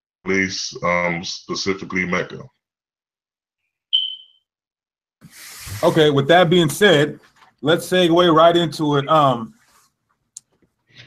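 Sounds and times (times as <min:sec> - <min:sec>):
short high electronic ping: 0:04.0 - 0:04.4.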